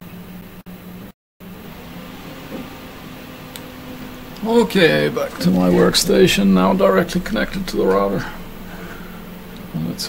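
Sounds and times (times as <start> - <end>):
low hum: 0.0 - 10.0
even hiss: 1.6 - 10.0.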